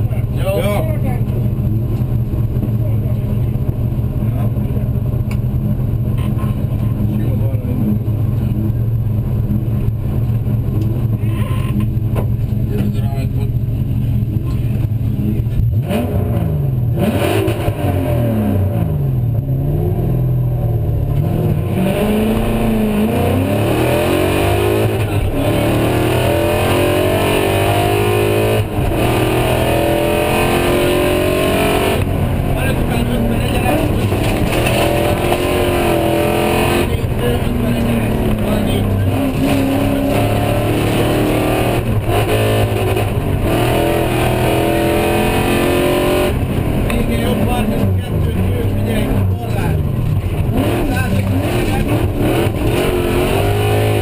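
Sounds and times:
car engine accelerating hard: 0.0s - 54.0s.

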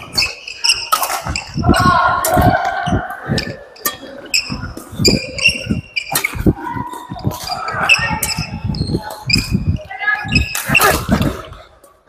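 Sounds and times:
rackets striking shuttlecock: 0.0s - 2.8s, 3.4s - 9.5s
shoes squeaking on floor: 0.0s - 11.5s.

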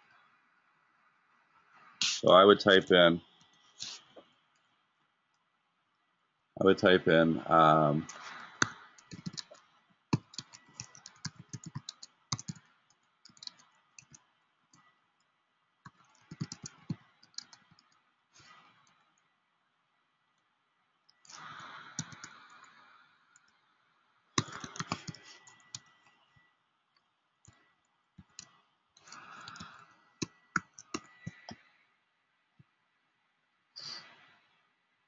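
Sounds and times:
computer keyboard typing: 8.0s - 14.2s, 15.9s - 17.8s, 21.3s - 22.4s, 24.4s - 26.0s, 28.2s - 31.6s.

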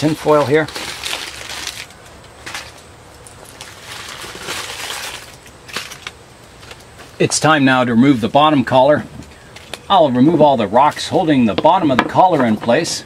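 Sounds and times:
aluminium foil crinkling: 0.0s - 6.2s.

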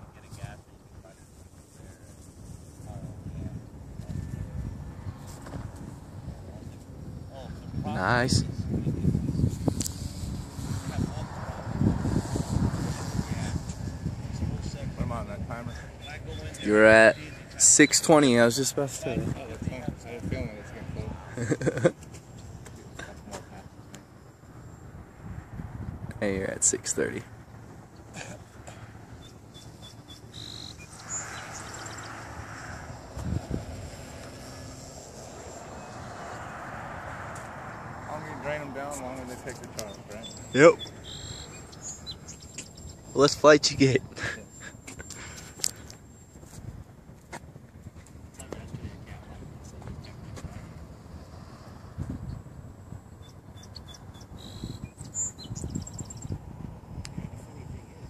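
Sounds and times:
wind gusting on microphone: 0.0s - 58.0s
small bird chirping: 29.2s - 32.2s, 39.8s - 43.1s, 53.1s - 56.4s.

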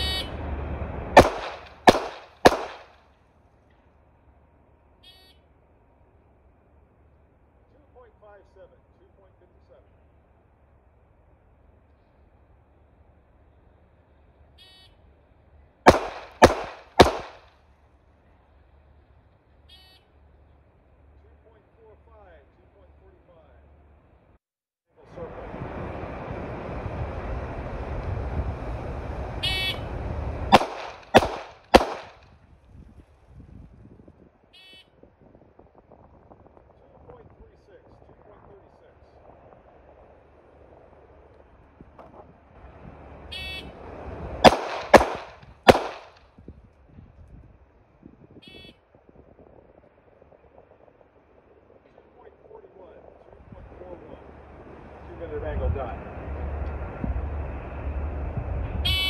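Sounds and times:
pistol shots: 1.2s - 3.0s, 15.9s - 17.5s, 30.5s - 32.2s, 44.4s - 46.2s.

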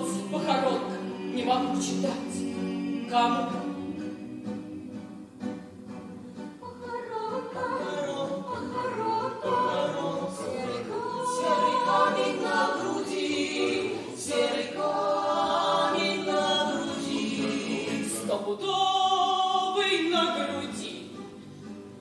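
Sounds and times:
choir singing slow song: 0.0s - 5.7s, 6.6s - 19.8s.

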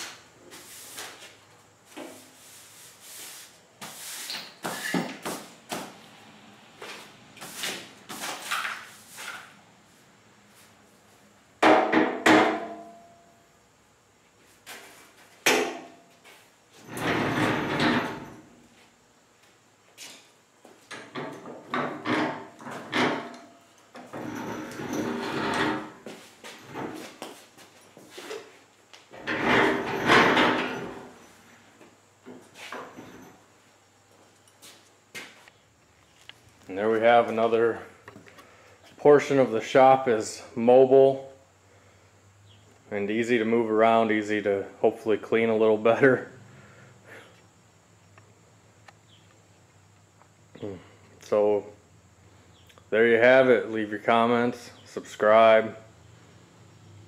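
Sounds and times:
metal bench knocks and clanks: 11.6s - 13.1s, 16.9s - 18.4s, 20.9s - 26.0s, 29.2s - 31.2s.

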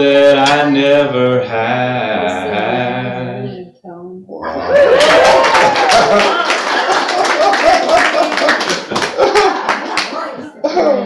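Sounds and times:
person singing wavering melody: 0.0s - 3.7s
people clapping: 4.5s - 10.5s.

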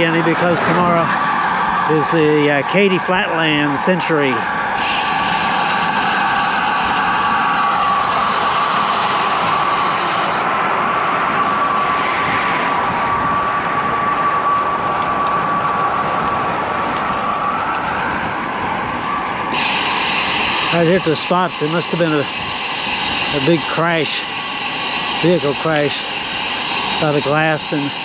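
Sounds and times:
steady high hum: 0.0s - 10.6s, 19.3s - 28.0s
bike wind and road noise: 0.0s - 28.0s.

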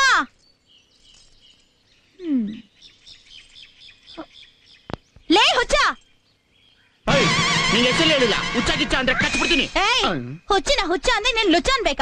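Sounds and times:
small birds chirping: 0.0s - 8.2s.

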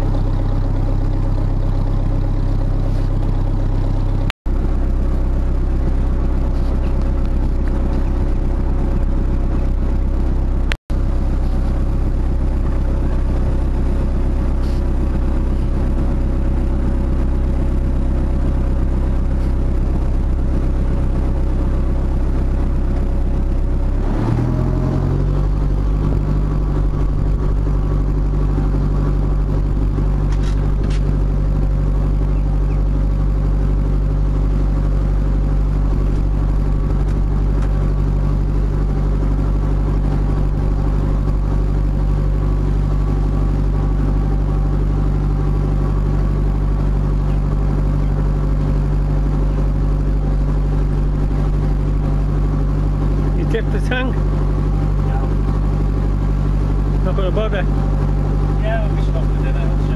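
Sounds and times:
boat diesel engine running: 0.0s - 59.9s.

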